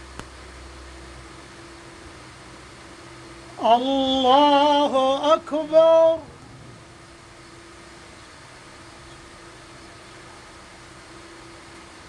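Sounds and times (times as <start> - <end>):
faint steady hum: 0.0 - 12.0
room hiss: 0.0 - 12.0.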